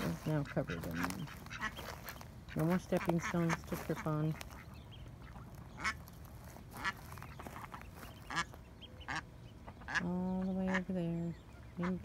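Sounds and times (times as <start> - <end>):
duck quacking: 0.0 - 12.0.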